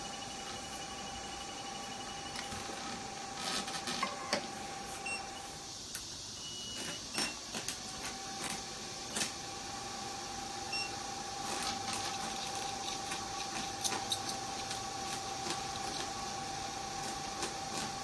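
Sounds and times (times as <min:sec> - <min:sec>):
laser machine humming whine: 0:00.0 - 0:18.0.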